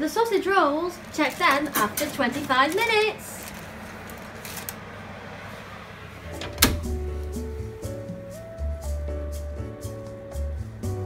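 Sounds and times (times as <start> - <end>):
oven door shutting: 6.2 - 7.4
background music with melody and bass: 6.2 - 11.0.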